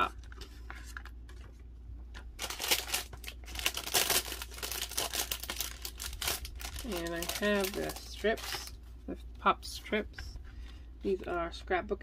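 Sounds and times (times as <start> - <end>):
paper rustling and crinkling: 0.0 - 1.6, 2.2 - 8.8.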